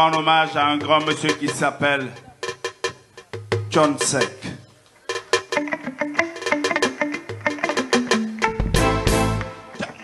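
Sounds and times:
live band music: 0:00.0 - 0:10.0
plucked guitar run: 0:05.2 - 0:10.0.

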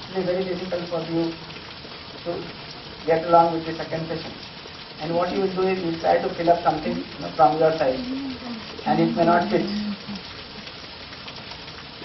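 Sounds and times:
steady recording hiss: 0:00.0 - 0:12.0.

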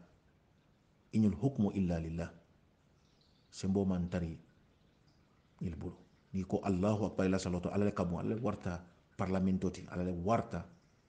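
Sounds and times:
man speaking: 0:01.2 - 0:02.4, 0:03.6 - 0:04.4, 0:05.6 - 0:10.7.

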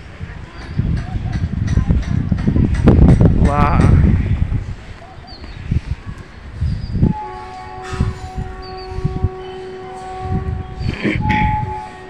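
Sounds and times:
wind gusting on microphone: 0:00.0 - 0:12.0
distant horn chord: 0:07.1 - 0:12.0.

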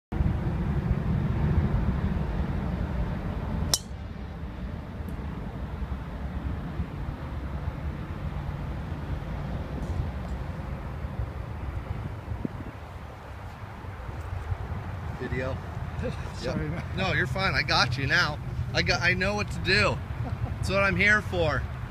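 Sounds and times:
wind rumbling on microphone: 0:00.1 - 0:21.9
golf club striking ball: 0:03.7 - 0:04.1.

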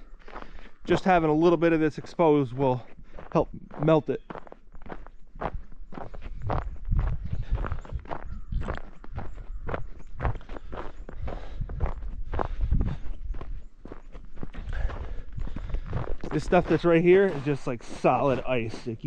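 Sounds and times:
footsteps on packed snow: 0:00.0 - 0:19.0.

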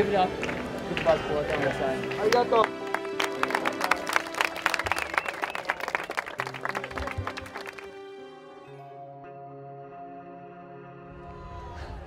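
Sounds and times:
people clapping: 0:00.0 - 0:08.1
soft background music: 0:00.0 - 0:11.6.

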